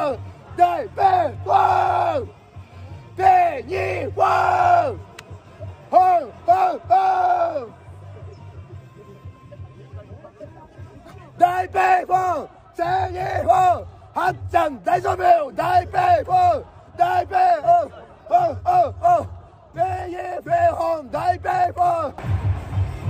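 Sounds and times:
man shouting a chant: 0:00.0 - 0:02.3, 0:03.1 - 0:05.1, 0:05.8 - 0:07.8, 0:11.3 - 0:22.2
crowd noise: 0:00.0 - 0:23.0
music: 0:00.0 - 0:23.0.

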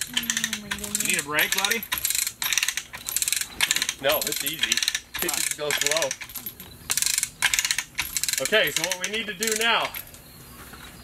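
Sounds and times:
chain hoist clicking and rattling: 0:00.0 - 0:10.2.

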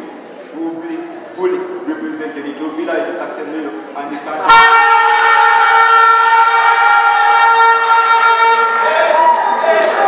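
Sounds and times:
loud steady pitched tone: 0:04.4 - 0:09.2.

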